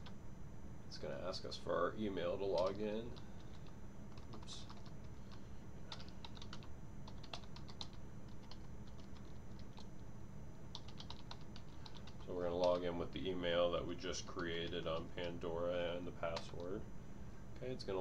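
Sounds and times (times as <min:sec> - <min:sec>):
faint steady hum: 0:00.0 - 0:18.0
keyboard typing: 0:02.5 - 0:10.0, 0:10.7 - 0:12.9, 0:16.3 - 0:16.7.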